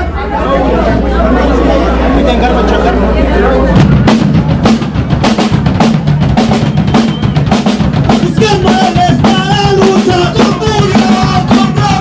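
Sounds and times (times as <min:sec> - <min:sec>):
punk band playing loud: 0:00.0 - 0:12.0
fast drum beats: 0:03.7 - 0:12.0.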